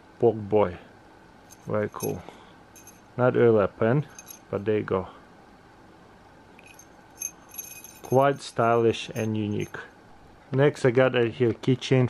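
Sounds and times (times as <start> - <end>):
key ring jingle: 1.5 - 2.2, 2.8 - 3.1, 4.1 - 4.5, 6.6 - 9.9
key ring metallic clinks: 1.5 - 2.2, 2.8 - 3.0, 4.1 - 4.5, 6.6 - 9.8.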